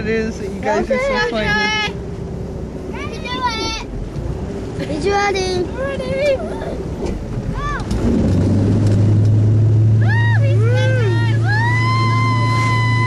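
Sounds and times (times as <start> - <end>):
boat engine running hard: 0.0 - 13.0.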